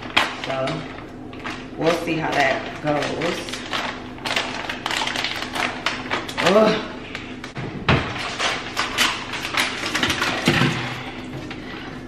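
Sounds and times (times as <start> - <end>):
plastic bag crinkling: 0.0 - 10.9.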